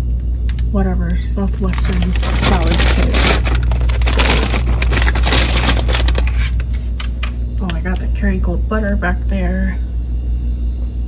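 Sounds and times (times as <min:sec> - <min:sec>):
low hum: 0:00.0 - 0:11.0
plastic bag crinkling: 0:01.5 - 0:06.9.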